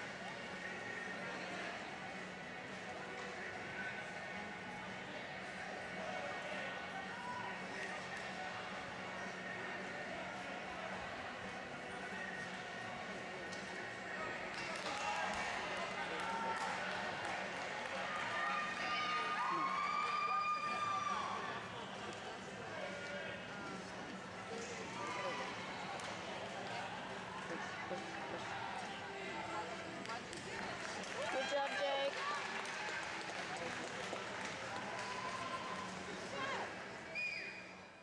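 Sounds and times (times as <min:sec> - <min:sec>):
distant crowd talking: 0:00.0 - 0:38.0
murmur of many voices: 0:00.0 - 0:38.0.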